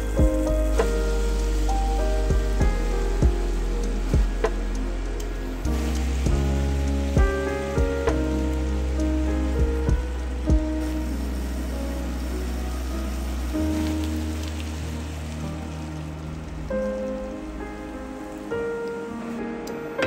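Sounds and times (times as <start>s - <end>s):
chicken sizzling in a frying pan: 0.0s - 19.4s.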